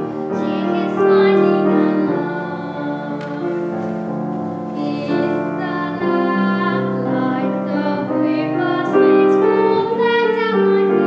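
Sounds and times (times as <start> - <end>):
grand piano accompaniment: 0.0 - 11.0
girl singing long notes: 0.3 - 3.9, 4.7 - 11.0.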